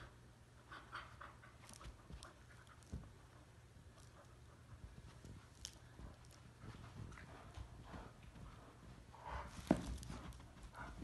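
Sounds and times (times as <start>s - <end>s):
paws and claws on carpet: 0.7s - 11.0s.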